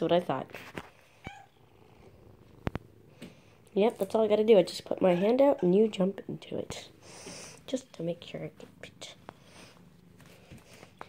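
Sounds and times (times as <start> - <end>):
cat purring faintly: 0.0 - 11.0.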